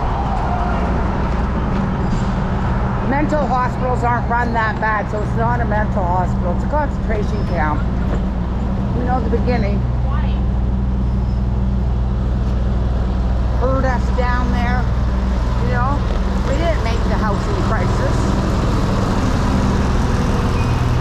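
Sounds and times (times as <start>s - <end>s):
idling truck hum: 1.3s - 21.0s
indistinct voices: 13.5s - 21.0s.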